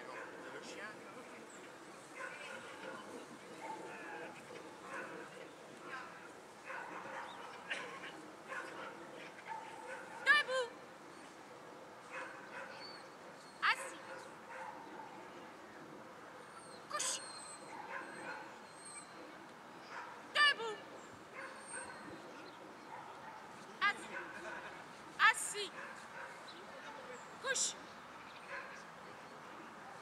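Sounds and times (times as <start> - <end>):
dog yelping and whining: 16.6 - 17.7.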